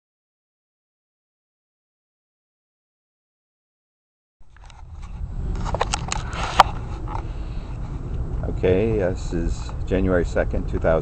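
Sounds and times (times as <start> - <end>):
wind rumble on microphone: 4.4 - 11.0
camera handling clicks and knocks: 4.5 - 7.3.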